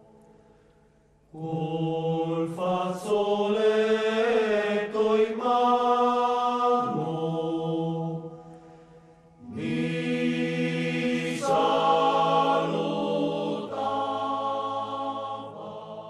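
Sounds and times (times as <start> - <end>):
choir of low voices singing: 1.3 - 16.0.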